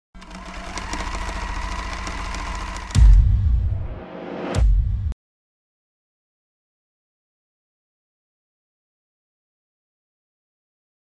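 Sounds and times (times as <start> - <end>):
sewing machine stitching: 0.2 - 3.2.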